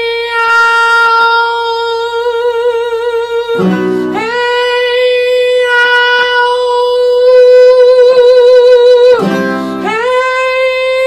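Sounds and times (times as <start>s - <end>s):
acoustic guitar: 0.0s - 11.0s
person singing a held high note: 0.0s - 11.0s.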